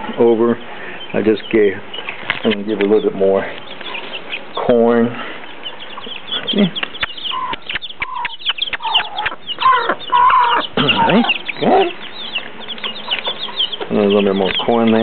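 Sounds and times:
beaks pecking on concrete: 0:00.0 - 0:15.0
chicks peeping: 0:00.0 - 0:15.0
hen clucking: 0:00.0 - 0:15.0.

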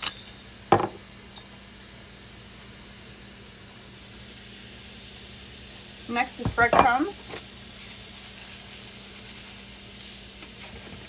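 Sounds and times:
mushrooms sizzling in a pan: 0:00.0 - 0:11.0
breadcrumbs rustling into a bowl: 0:07.7 - 0:11.0.

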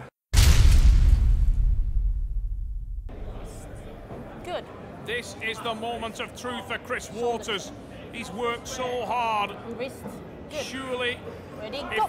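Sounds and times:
deep boom with rumbling tail: 0:00.4 - 0:04.3.

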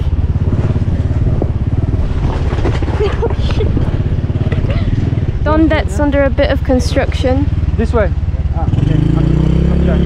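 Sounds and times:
motorbike engine running: 0:00.0 - 0:10.0.

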